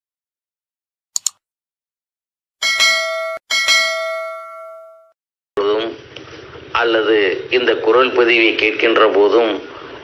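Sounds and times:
bell ringing: 2.6s - 5.2s.

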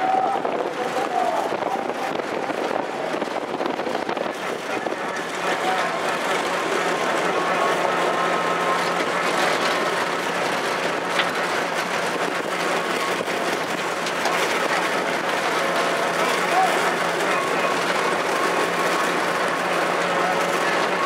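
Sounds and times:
vehicle engine running: 0.0s - 21.0s.

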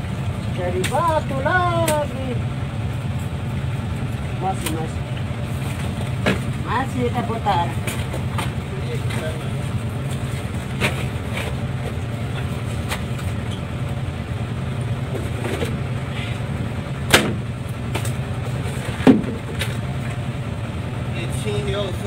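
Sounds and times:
boat engine droning: 0.0s - 22.0s
sharp knocks: 17.1s - 18.1s.

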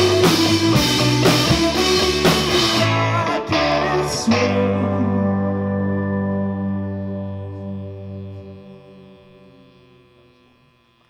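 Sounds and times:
keyboard and electric guitar chord: 0.0s - 10.9s.

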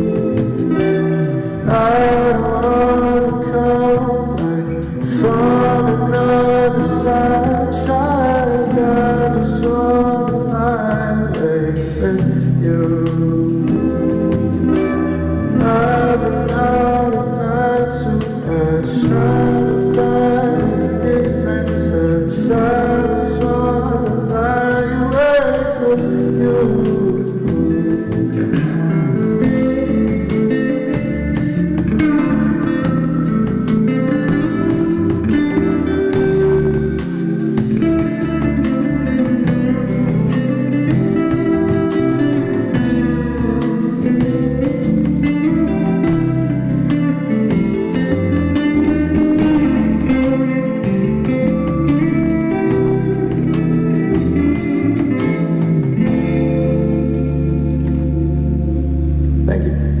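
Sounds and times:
bass guitar: 0.0s - 60.0s
drum kit: 0.0s - 60.0s
electric guitar: 0.0s - 60.0s
low held guitar chord ringing: 0.0s - 60.0s.

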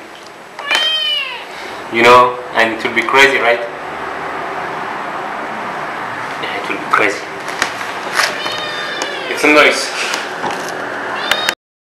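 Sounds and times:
kitten meowing: 0.6s - 1.5s, 8.2s - 9.7s, 11.1s - 11.6s.

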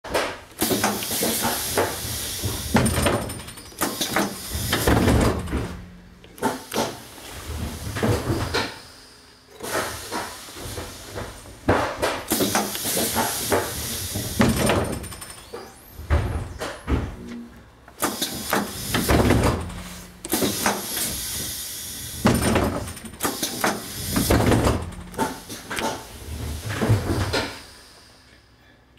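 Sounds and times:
bus doors clunking and knocking: 0.1s - 8.8s, 9.6s - 27.7s
air hissing: 0.6s - 5.6s, 6.4s - 11.4s, 12.3s - 15.8s, 18.0s - 28.4s.

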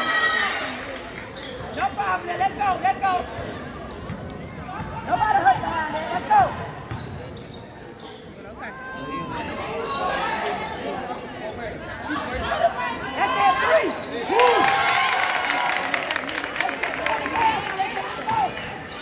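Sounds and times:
sneakers squeaking on court: 1.2s - 2.0s, 3.3s - 6.2s, 6.8s - 8.5s
crowd clapping: 14.3s - 18.8s.

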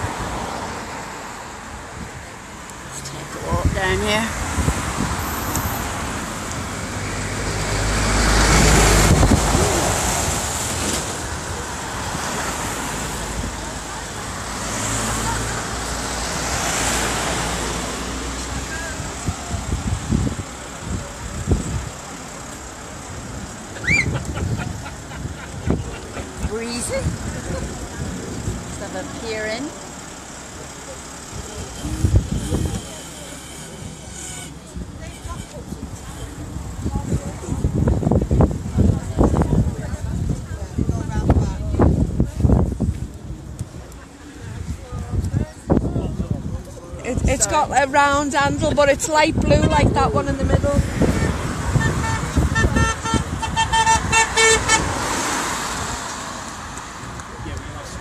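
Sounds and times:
road traffic passing: 0.0s - 58.0s
faint voices: 8.5s - 53.4s.

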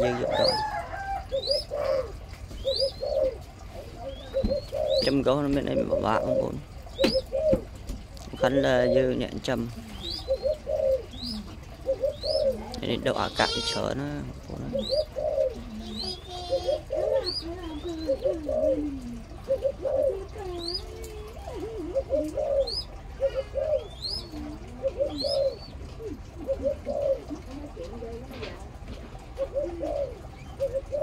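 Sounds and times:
low cooing bird calls: 0.0s - 31.0s.

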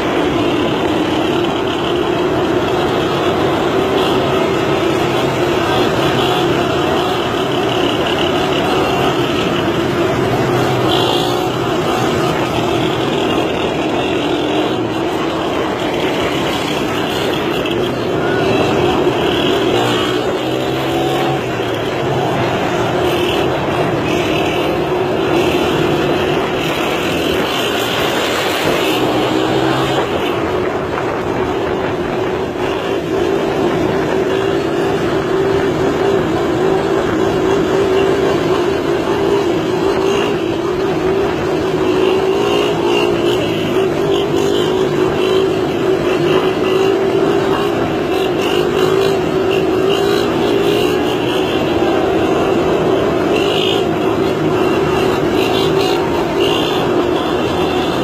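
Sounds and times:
small motorcycle engines running: 0.0s - 58.0s.

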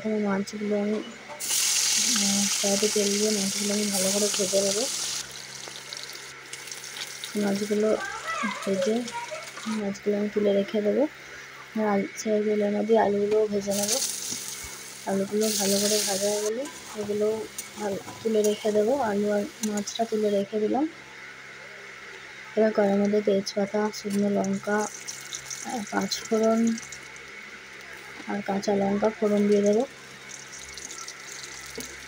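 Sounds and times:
fish sizzling in hot oil: 1.4s - 9.8s, 13.7s - 20.4s, 23.9s - 27.9s, 28.5s - 32.0s
person talking: 2.0s - 4.9s, 7.3s - 11.1s, 11.7s - 14.0s, 15.1s - 20.9s, 22.6s - 24.9s, 25.6s - 26.8s, 28.2s - 29.9s.

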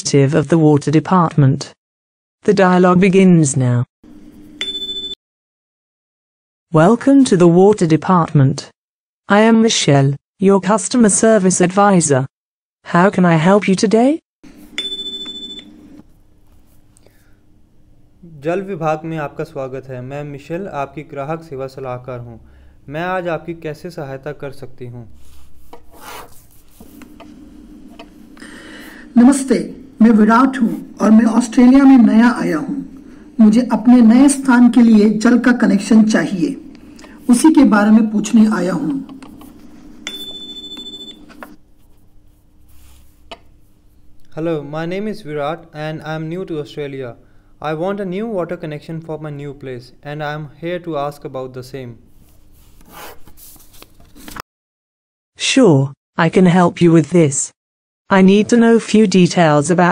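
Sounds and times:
high electronic chime tone: 40.0s - 41.2s.

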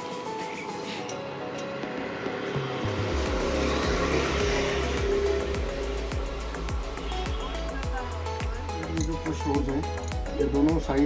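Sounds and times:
vehicle engine droning: 2.5s - 8.3s.

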